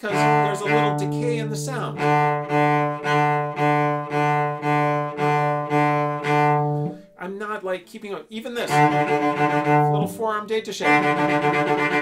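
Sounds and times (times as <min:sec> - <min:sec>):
cello bowing low note: 0:00.0 - 0:07.2, 0:08.6 - 0:12.0.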